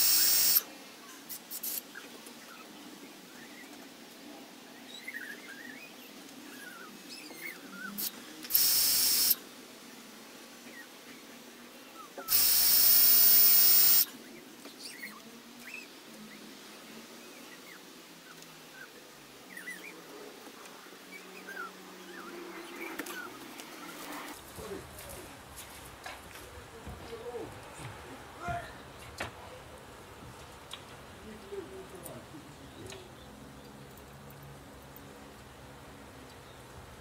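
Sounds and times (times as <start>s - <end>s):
cordless drill whirring: 0.0s - 0.6s, 8.5s - 9.4s, 12.3s - 14.0s
small birds chirping: 10.6s - 16.5s, 17.1s - 24.0s, 30.7s - 34.4s.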